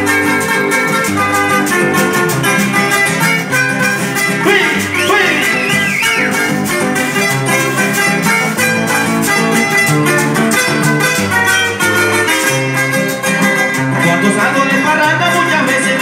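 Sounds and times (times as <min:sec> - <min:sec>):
acoustic guitars picking a melody: 0:00.0 - 0:16.0
bass line: 0:00.0 - 0:16.0
hand percussion: 0:00.0 - 0:16.0
wavering high tone: 0:00.7 - 0:08.6.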